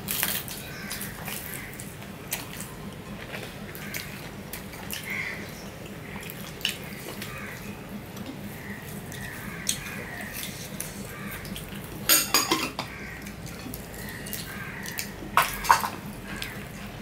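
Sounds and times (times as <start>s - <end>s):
ceramic bowl clinking on plates: 12.1s - 12.9s, 15.4s - 16.0s.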